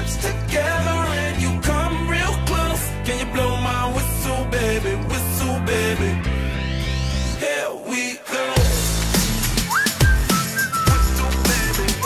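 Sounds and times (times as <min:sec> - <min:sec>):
electronic beat with bass kicks: 0:08.6 - 0:12.0
person whistling melody: 0:09.4 - 0:12.0.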